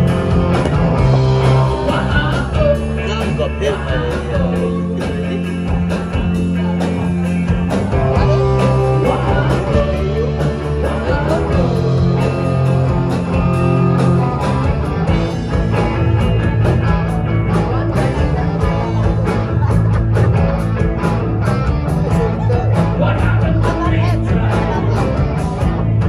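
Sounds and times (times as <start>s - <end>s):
rock band playing live: 0.0s - 26.0s
person singing: 1.4s - 14.5s, 22.0s - 25.8s.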